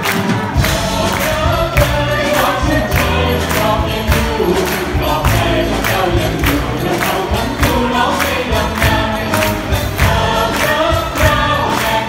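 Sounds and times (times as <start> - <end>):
orchestra playing: 0.0 - 12.0
percussive beat: 0.0 - 12.0
group singing: 0.5 - 12.0.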